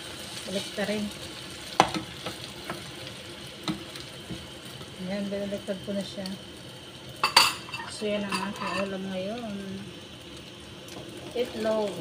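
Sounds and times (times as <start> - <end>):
omelette sizzling in a frying pan: 0.0 - 12.0.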